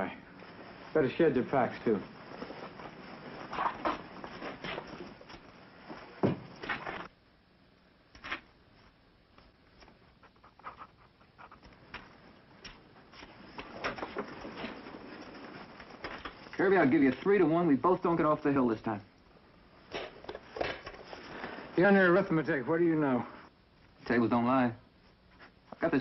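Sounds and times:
gear clicks and rustles: 0.3 - 7.1, 9.5 - 19.3.

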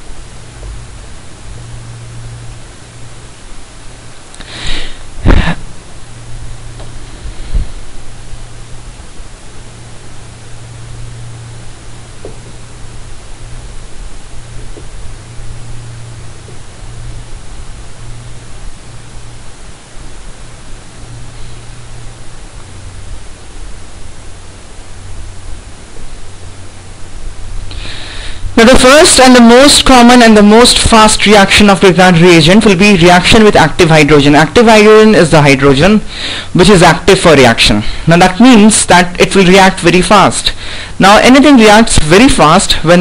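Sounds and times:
low electrical hum: 0.0 - 43.0
steady hiss: 0.0 - 43.0.

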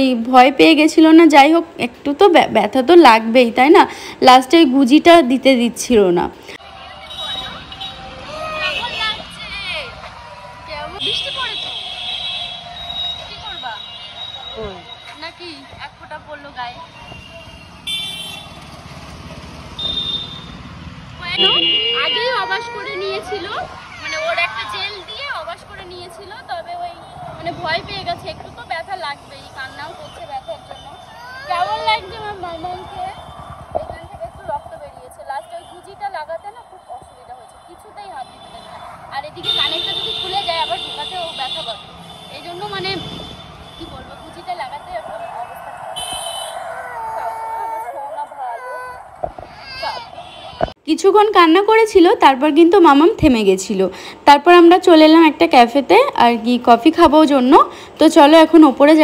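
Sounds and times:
traffic engine rumble: 0.0 - 59.0
high-pitched vehicle beeps: 12.8 - 15.3
toddler girl crying: 22.2 - 24.6, 31.1 - 31.9, 46.6 - 50.3.

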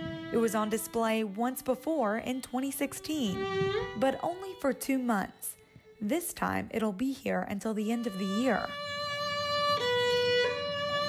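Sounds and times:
solo violin long notes: 0.0 - 6.7, 7.9 - 11.0.

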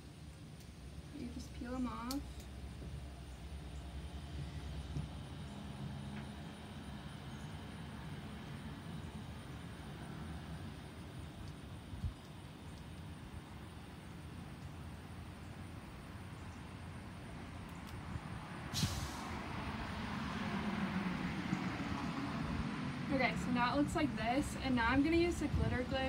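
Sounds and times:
passing motor vehicle rumble: 0.8 - 26.0.

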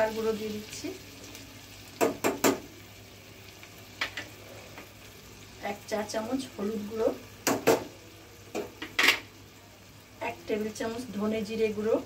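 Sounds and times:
curry simmering: 0.0 - 12.0.

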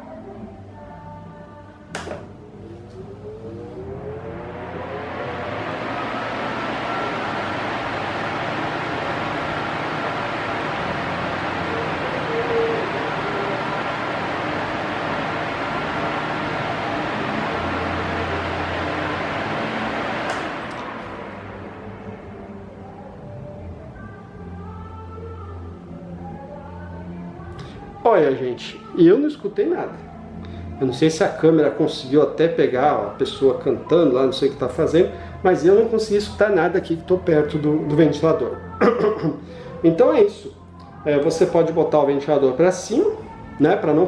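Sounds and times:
faint music with singing: 0.0 - 44.0
fan rushing air: 0.0 - 44.0
fan switch click: 1.9 - 2.3, 20.2 - 20.9.

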